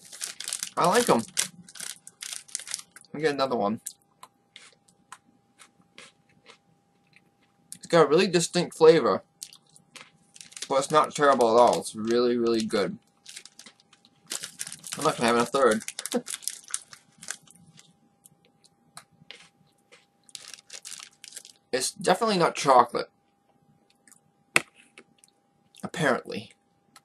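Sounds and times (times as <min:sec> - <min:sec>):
biscuit stick crunching: 0:00.0 - 0:03.1, 0:09.4 - 0:17.9, 0:19.3 - 0:21.6.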